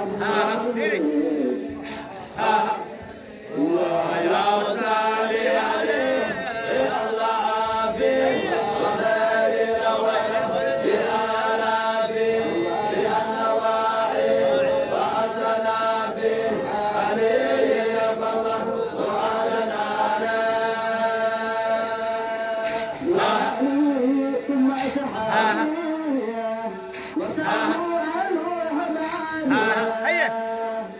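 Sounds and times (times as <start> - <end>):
men chanting together: 0.0 - 30.9.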